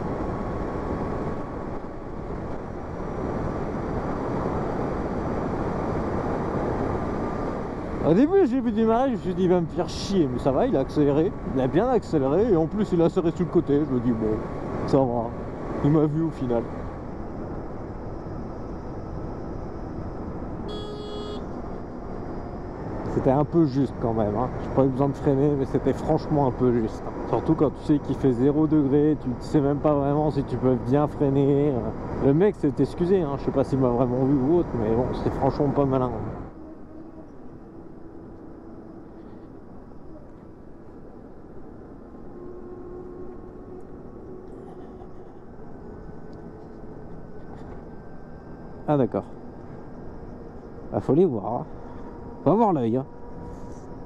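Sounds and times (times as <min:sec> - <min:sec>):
wind rush: 0:00.0 - 0:08.4
wind and tyre noise: 0:00.0 - 0:54.0
brief high tone: 0:20.7 - 0:21.5.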